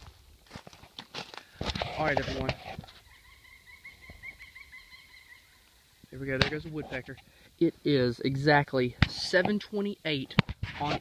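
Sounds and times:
woodpecker calling: 0:02.8 - 0:07.6.

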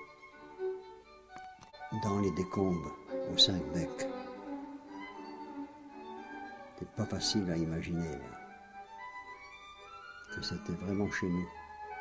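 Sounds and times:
bowed strings sustained notes: 0:00.0 - 0:12.0.

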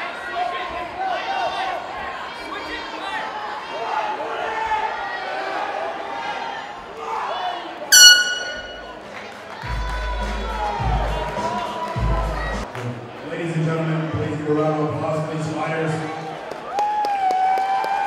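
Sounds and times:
loud horn: 0:07.9 - 0:09.0.

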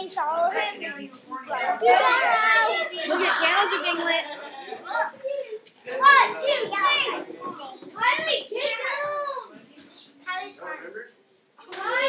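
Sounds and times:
children calling out and chattering: 0:00.0 - 0:12.0.

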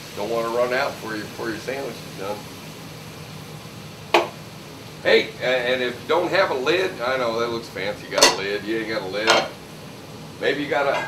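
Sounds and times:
ventilation hood hum: 0:00.0 - 0:11.0
wine glass clinking on steel: 0:08.2 - 0:08.5, 0:09.2 - 0:09.6.

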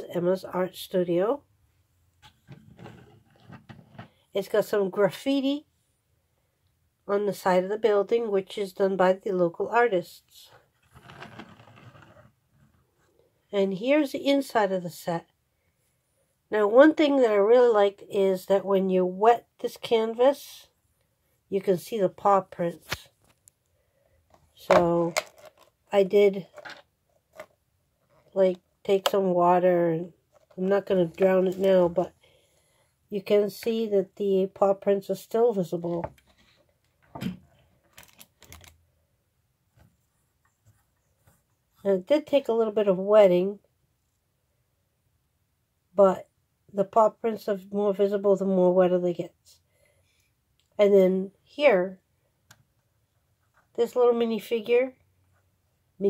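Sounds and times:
plastic toy bricks rustling: 0:10.8 - 0:12.3, 0:24.6 - 0:25.8, 0:26.4 - 0:28.4, 0:37.8 - 0:38.8
soft plastic clicks and rubs: 0:22.8 - 0:25.9, 0:26.5 - 0:29.2, 0:30.2 - 0:30.6, 0:36.0 - 0:38.8.

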